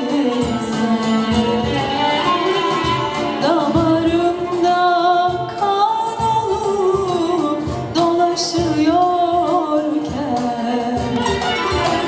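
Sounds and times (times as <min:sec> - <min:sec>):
accompanying ensemble: 0:00.0 - 0:05.3.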